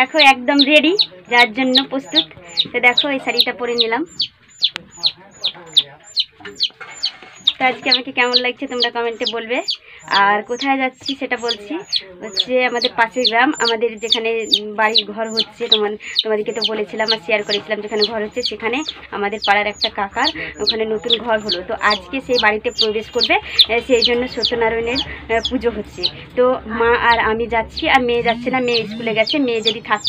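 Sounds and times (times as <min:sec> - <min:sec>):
chickens clucking: 0:00.0 - 0:30.0.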